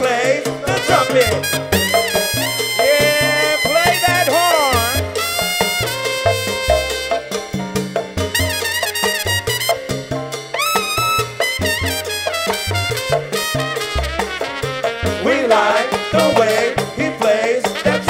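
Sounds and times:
salsa band playing: 0.0 - 18.0
trumpet solo: 0.7 - 7.6, 8.3 - 16.8, 17.8 - 18.0.

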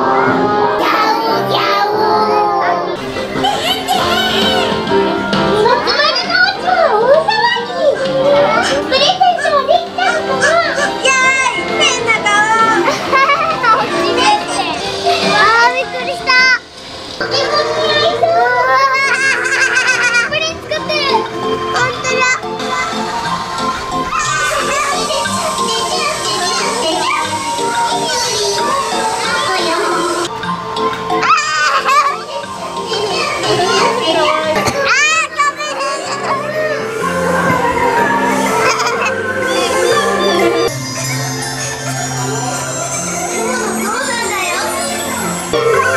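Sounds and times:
ride background music: 0.0 - 45.9
young children talking excitedly: 0.0 - 45.9
girls chattering and laughing: 2.2 - 30.3, 31.1 - 45.9.

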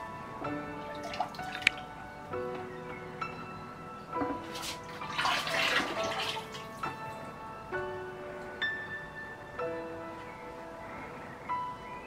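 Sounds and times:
background music of held notes: 0.0 - 12.0
glaze sloshing in a bucket: 4.2 - 6.8.

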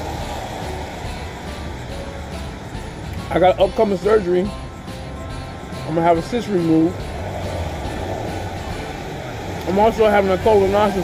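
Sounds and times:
faint background music: 0.0 - 11.0
vehicle engine rumble: 0.0 - 11.0.

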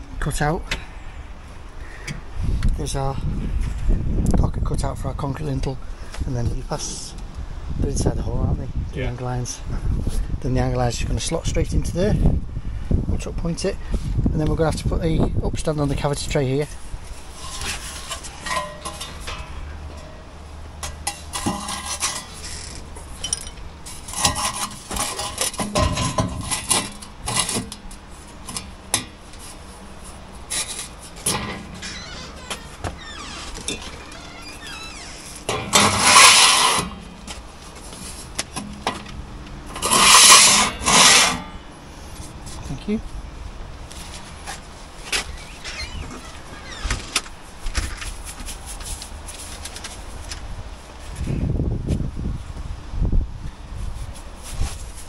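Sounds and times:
loud scraping: 29.4 - 37.3, 39.7 - 41.6.

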